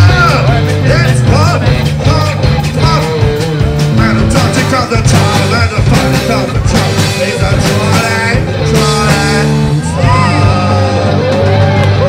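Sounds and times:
man singing: 0:00.0 - 0:11.6
live rock band playing: 0:00.0 - 0:12.0.

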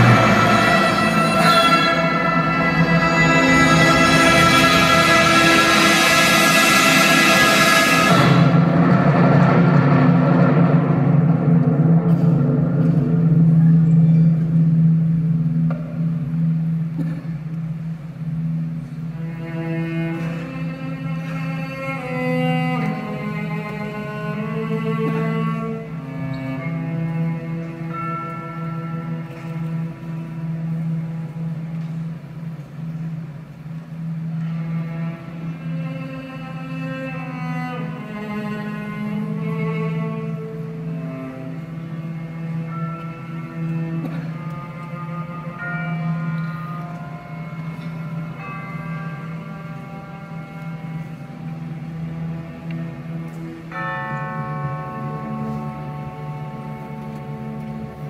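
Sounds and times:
long-held low note: 0:00.0 - 0:58.0
quiet melody: 0:00.0 - 0:58.0
traditional orchestra playing: 0:00.0 - 0:58.0.

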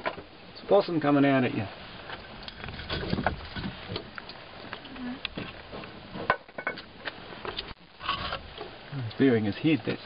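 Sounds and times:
clicks and knocks on logs: 0:02.1 - 0:08.3.

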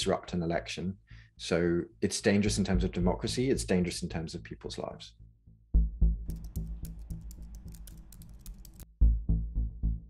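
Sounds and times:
low music bed: 0:00.0 - 0:10.0
rapid keyboard typing clicks: 0:06.3 - 0:08.9.

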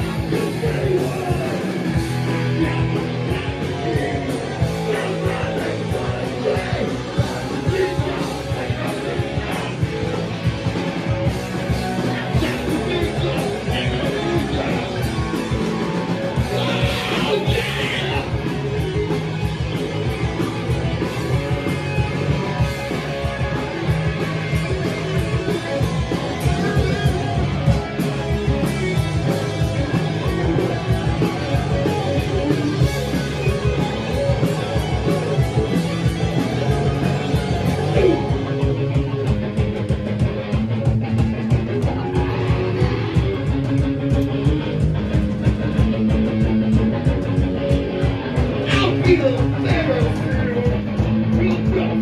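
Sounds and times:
punk rock band playing live: 0:00.0 - 0:52.0.

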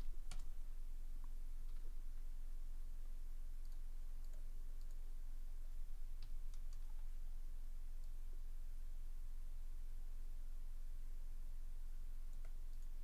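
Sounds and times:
steady low hum: 0:00.0 - 0:13.0
computer mouse clicks: 0:03.6 - 0:05.0, 0:06.2 - 0:07.1, 0:12.3 - 0:13.0.

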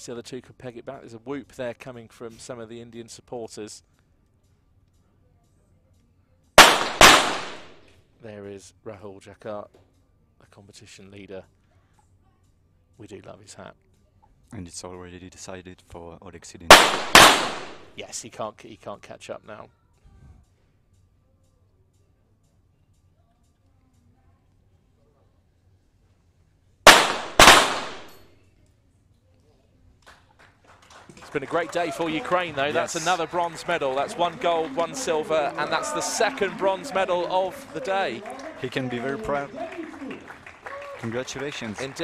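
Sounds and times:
pistol shots echoing indoors: 0:06.6 - 0:07.9, 0:16.7 - 0:18.0, 0:26.9 - 0:28.2.

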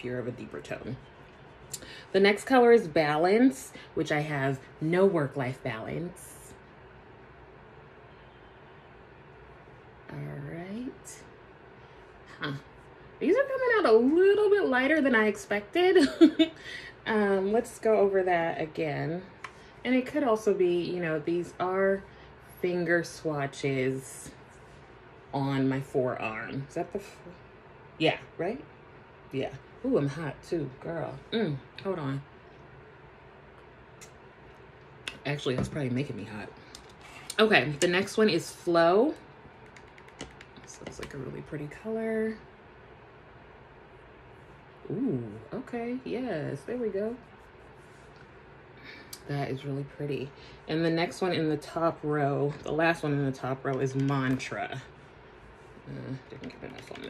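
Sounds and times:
low hum: 0:00.0 - 0:57.0.

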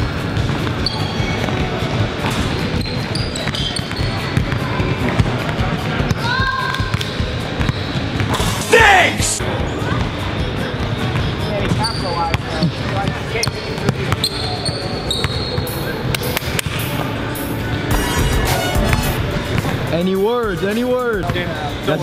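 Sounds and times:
background music: 0:04.2 - 0:11.8, 0:15.7 - 0:22.0.

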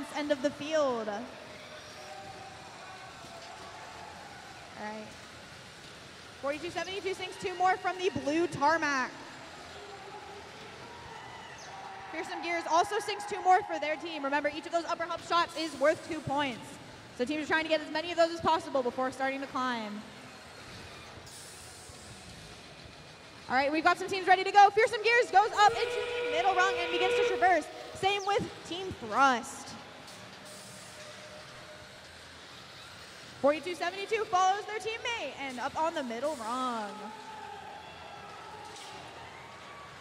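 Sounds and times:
distant crowd: 0:00.0 - 0:40.0
faint arena background din: 0:00.0 - 0:40.0
thin steady tone: 0:25.1 - 0:29.4.

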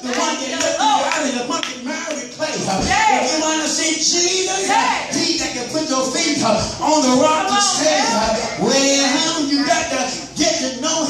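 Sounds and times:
hand clapping: 0:00.0 - 0:02.2
voices calling: 0:04.3 - 0:11.0.

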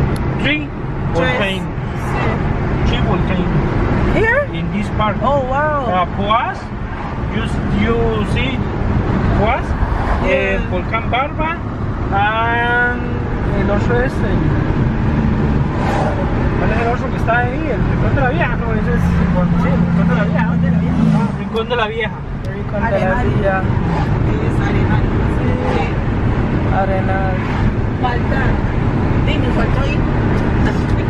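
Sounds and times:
car cabin road noise: 0:00.0 - 0:31.0.

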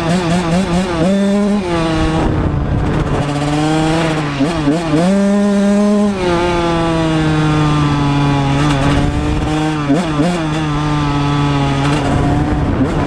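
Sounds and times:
two-stroke motorcycle engine running: 0:00.0 - 0:13.0.

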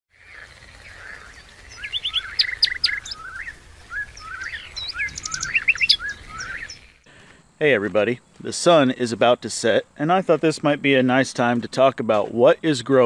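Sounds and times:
songbirds chirping and whistling: 0:00.1 - 0:09.0.

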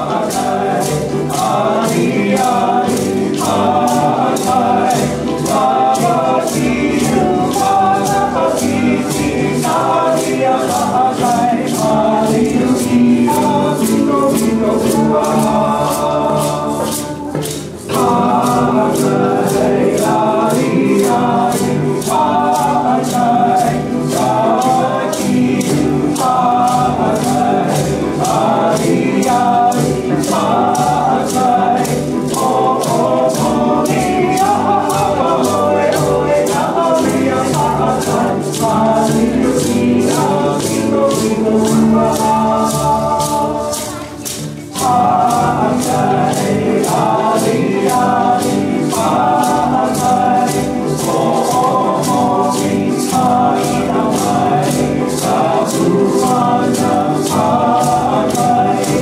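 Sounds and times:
group singing with a band: 0:00.0 - 0:59.0
quick rattling percussion beat: 0:00.0 - 0:59.0.

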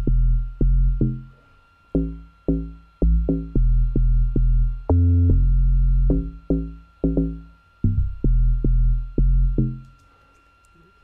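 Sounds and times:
log drum bass line: 0:00.0 - 0:01.3, 0:02.0 - 0:09.8.

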